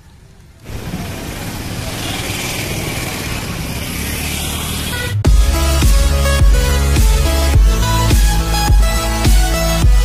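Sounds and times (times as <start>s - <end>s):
traffic-like hum: 0.0s - 9.7s.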